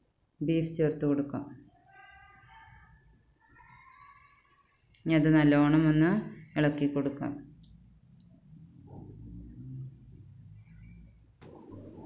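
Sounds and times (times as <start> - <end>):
faint steady tones: 7.4 - 12.0.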